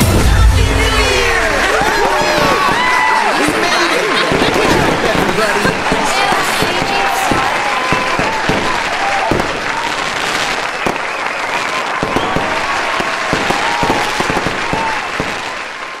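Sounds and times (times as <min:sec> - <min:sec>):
crowd cheering and clapping: 0:00.0 - 0:16.0
fireworks popping and banging: 0:00.0 - 0:16.0
firework whistles: 0:04.3 - 0:16.0.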